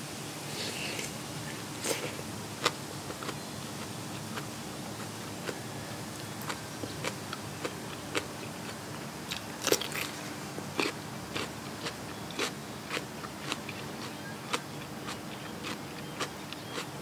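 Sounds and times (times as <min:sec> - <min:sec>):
chewing crisp raw vegetable: 0:01.8 - 0:17.0.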